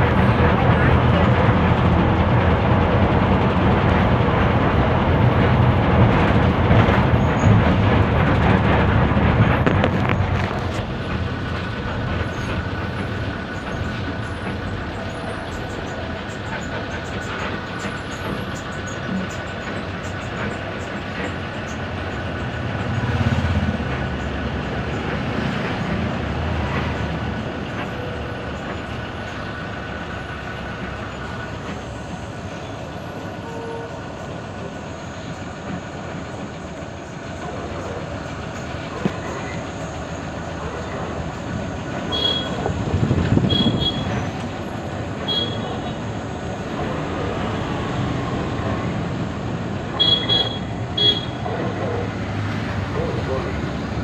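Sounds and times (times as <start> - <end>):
bus engine and road drone: 0.0 - 54.0.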